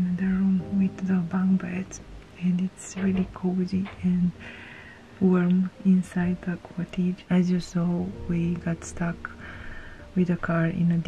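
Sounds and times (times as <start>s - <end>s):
woman speaking: 0.0s - 4.5s, 5.2s - 9.4s, 10.2s - 11.0s.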